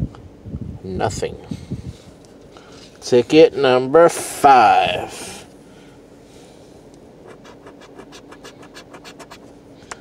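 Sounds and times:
coin scratching lottery ticket: 0:07.2 - 0:09.5.

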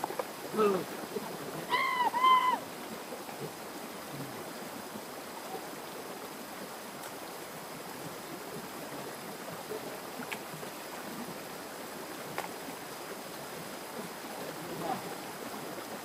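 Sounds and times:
stream rushing over rocks: 0:00.0 - 0:16.0.

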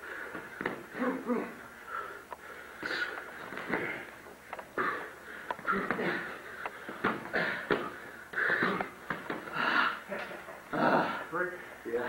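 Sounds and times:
sharp exhaled breaths and grunts: 0:00.0 - 0:10.1, 0:10.7 - 0:11.6
boxing gloves slapping: 0:00.2 - 0:01.2, 0:05.6 - 0:09.7.

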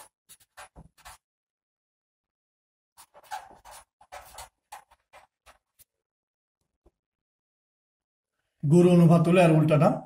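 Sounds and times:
pen scratching on paper: 0:03.0 - 0:05.9.

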